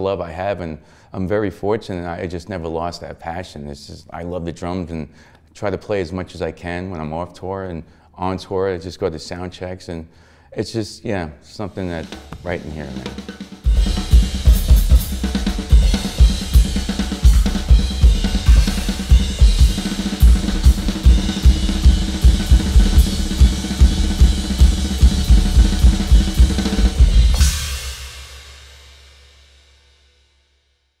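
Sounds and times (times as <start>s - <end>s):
drum kit groove: 11.8s - 29.9s
cymbal crash ringing: 13.6s - 29.9s.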